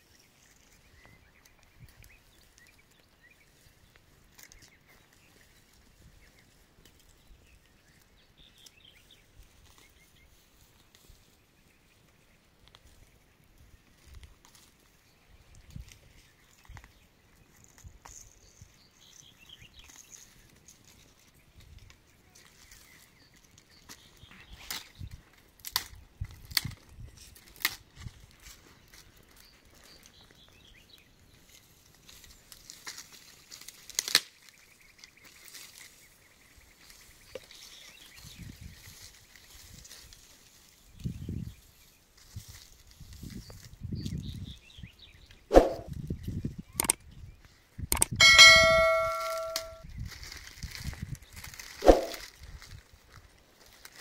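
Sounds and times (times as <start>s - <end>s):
dry sticks snapping: 25.6s - 26.8s, 27.5s - 27.8s, 32.6s - 34.4s, 47.9s - 48.2s
click: 47.9s - 48.1s
ringing bell-like chime: 48.2s - 49.8s.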